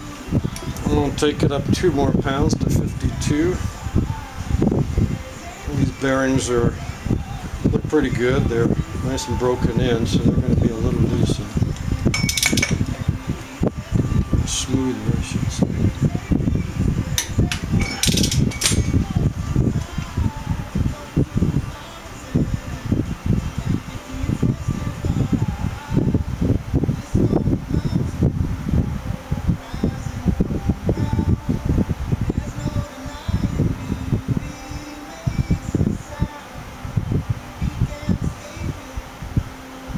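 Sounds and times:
wind buffeting microphone: 0.3 - 39.9
metallic clicks and clinks: 12.1 - 12.9, 17.2 - 19.0.

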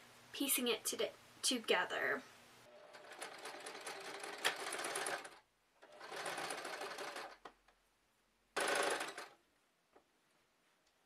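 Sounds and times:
electric sewing machine stitching: 2.7 - 7.4, 8.6 - 9.4.

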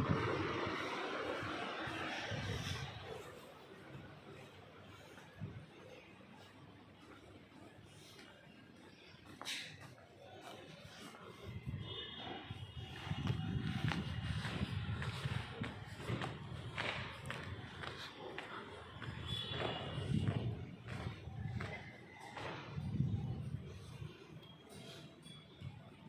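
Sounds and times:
footsteps on concrete stairs: 13.2 - 23.2.

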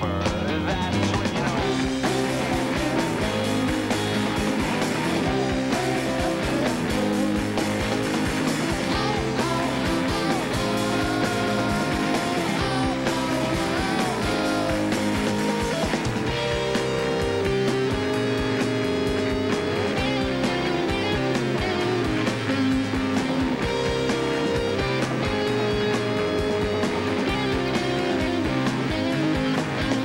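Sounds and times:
bass line: 0.0 - 30.0
electric guitars: 0.0 - 30.0
steady drum beat: 0.0 - 30.0.

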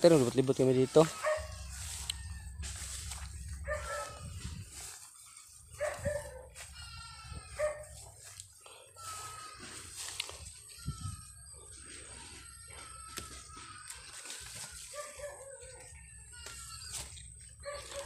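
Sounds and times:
low steady rumble: 1.4 - 4.7.

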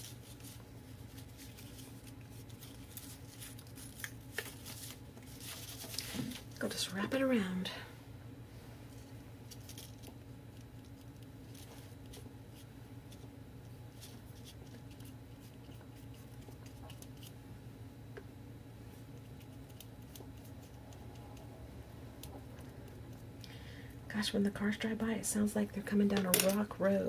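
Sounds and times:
paper and craft materials handled: 0.0 - 6.7
low room hum: 0.0 - 27.0.

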